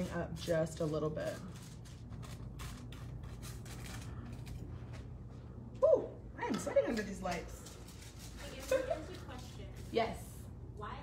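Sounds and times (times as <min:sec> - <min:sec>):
brush scraping on foil: 0:00.0 - 0:05.1, 0:06.9 - 0:10.2
low steady hum: 0:00.0 - 0:11.0.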